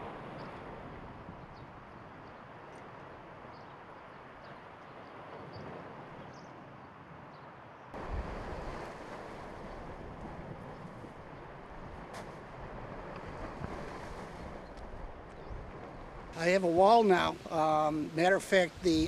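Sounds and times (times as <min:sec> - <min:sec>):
wind rumble on microphone: 0:00.0 - 0:17.5
lake waves on rocky shore: 0:08.0 - 0:19.0.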